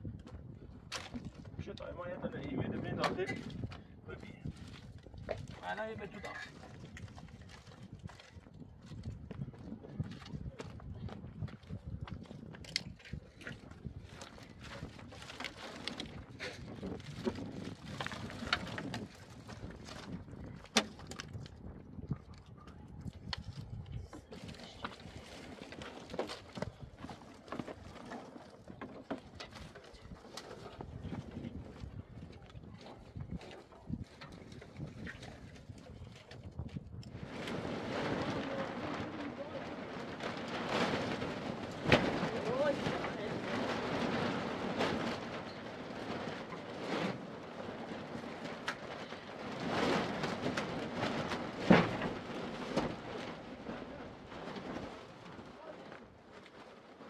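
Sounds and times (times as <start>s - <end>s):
dry branches rustling and clattering: 4.4s - 9.1s, 10.0s - 57.0s.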